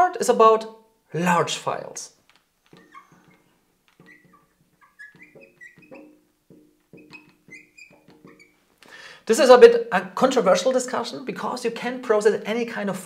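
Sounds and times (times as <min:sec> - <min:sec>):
marker pen squeaking on glass: 0:02.6 - 0:08.7.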